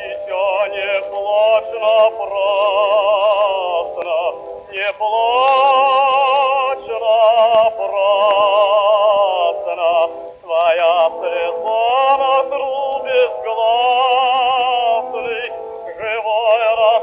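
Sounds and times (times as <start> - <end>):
man singing opera with vibrato: 0.0 - 17.0.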